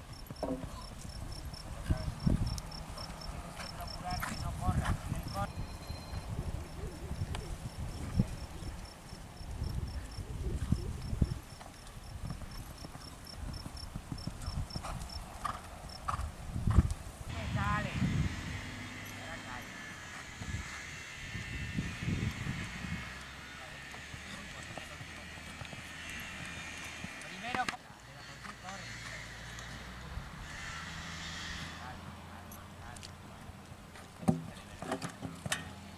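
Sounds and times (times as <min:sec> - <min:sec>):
crickets chirping: 0:00.0 - 0:16.2, 0:17.1 - 0:27.5
horse hoofbeats on sand: 0:03.0 - 0:05.4.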